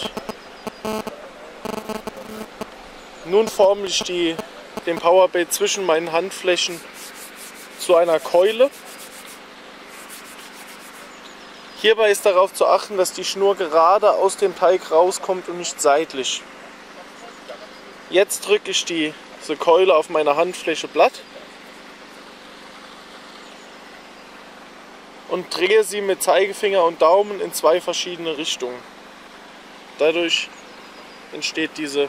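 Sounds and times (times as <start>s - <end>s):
outdoor background hiss: 0.0s - 32.0s
hands rubbing together: 6.6s - 11.2s.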